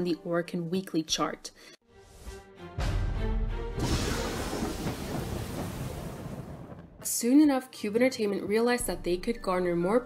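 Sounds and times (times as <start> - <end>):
crash transition sound effect: 3.8 - 7.0.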